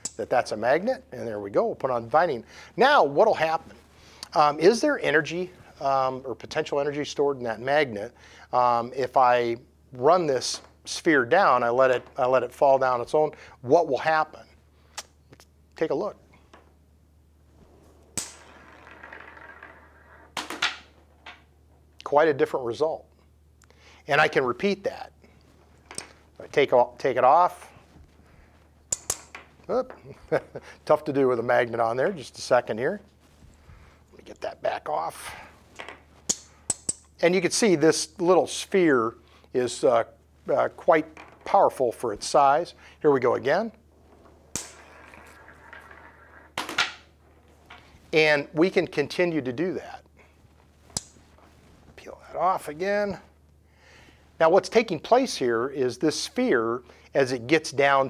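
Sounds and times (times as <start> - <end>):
sharp metallic clacks of balls: 0.0 - 0.3, 18.2 - 19.4, 28.9 - 29.5, 35.8 - 37.2, 44.5 - 45.8, 50.9 - 51.3
steel ball rolling on rail: 18.2 - 20.5, 44.5 - 46.6.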